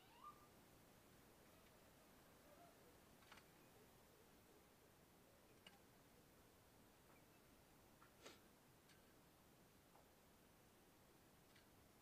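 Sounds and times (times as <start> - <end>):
faint rising animal call: 0.0 - 0.5.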